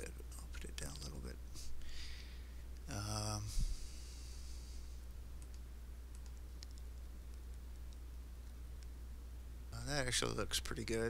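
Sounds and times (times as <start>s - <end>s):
steady low hum: 0.0s - 11.0s
computer mouse clicks: 5.4s - 9.0s.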